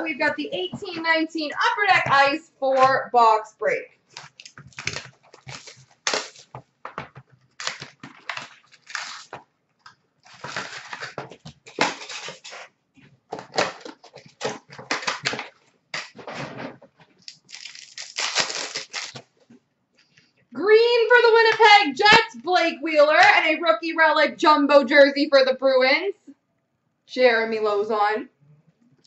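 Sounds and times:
plastic wrapping crinkling and ripping: 0:04.1 - 0:19.4.

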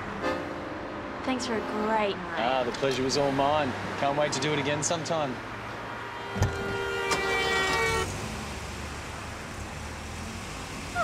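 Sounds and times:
car engine and traffic rumble: 0:00.0 - 0:11.0
car horn honk: 0:06.0 - 0:08.2.

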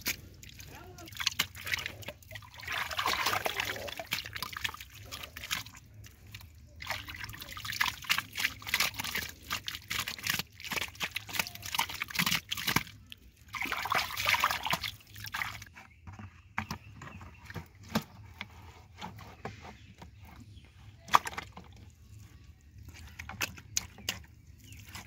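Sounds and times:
hands splashing in muddy water: 0:00.0 - 0:15.7.

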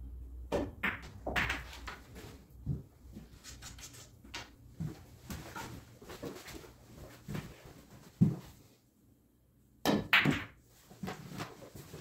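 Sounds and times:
pool balls clacking: 0:00.5 - 0:02.1.

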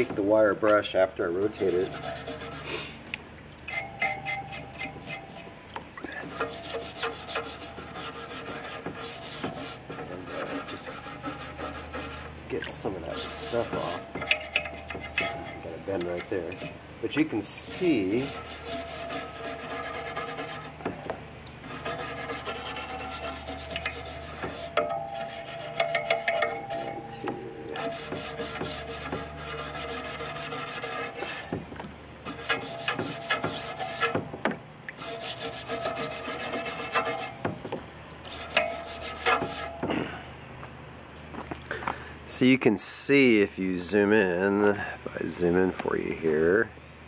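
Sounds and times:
wire brush scrubbing rusty steel: 0:00.0 - 0:20.9, 0:21.6 - 0:31.6, 0:32.2 - 0:37.6, 0:38.2 - 0:40.0.

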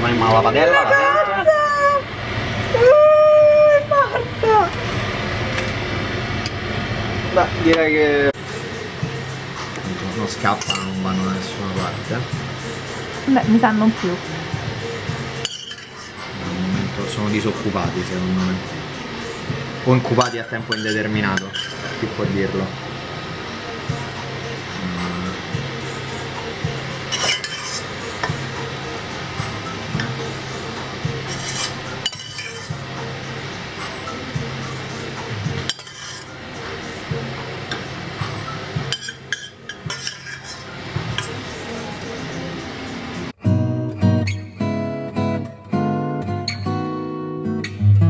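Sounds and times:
steady whirring hum: 0:00.0 - 0:43.4
utensil scraping a metal pot: 0:15.4 - 0:16.4, 0:20.2 - 0:22.1, 0:27.0 - 0:28.1, 0:31.2 - 0:32.8, 0:35.7 - 0:36.4, 0:38.9 - 0:41.4.

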